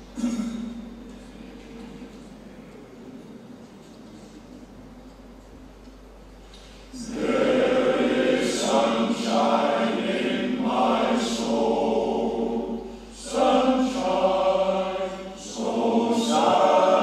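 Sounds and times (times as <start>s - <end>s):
male voice choir singing: 7.0s - 17.0s.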